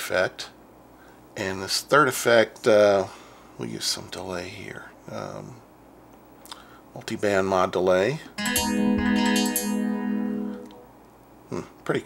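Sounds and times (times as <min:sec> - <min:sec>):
synthesizer plucked guitar note: 0:08.4 - 0:10.9.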